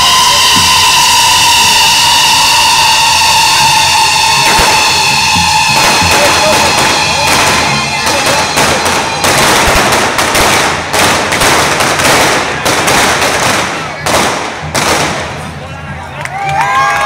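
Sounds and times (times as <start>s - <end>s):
firecrackers crackling: 0.0s - 17.0s
sharp firework bangs: 4.4s - 15.6s.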